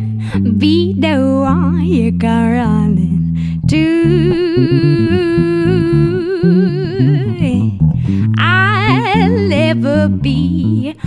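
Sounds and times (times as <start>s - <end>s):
bass guitar: 0.0s - 11.0s
woman singing long note with vibrato: 0.4s - 11.0s.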